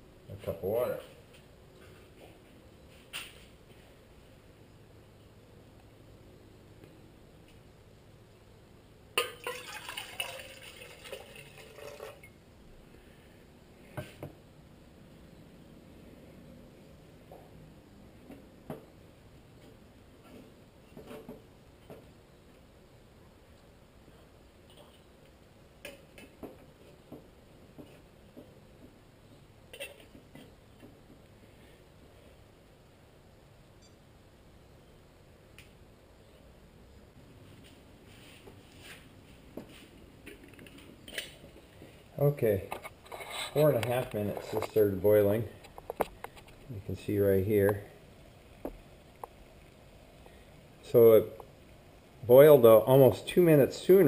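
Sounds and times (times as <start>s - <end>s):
metal pot knocks and clinks: 9.2s - 10.4s
water pouring into metal pot: 9.2s - 12.3s.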